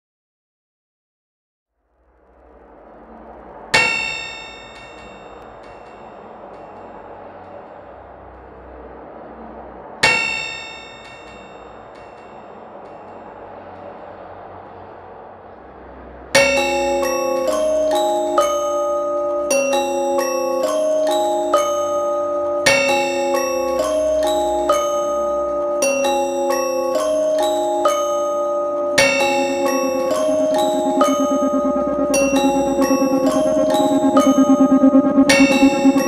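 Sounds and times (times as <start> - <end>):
bell-like struck tones: 16.4 - 36.0
glockenspiel-like mallet melody: 16.4 - 36.0
hazy electronic drone: 16.5 - 20.5, 29.0 - 36.0.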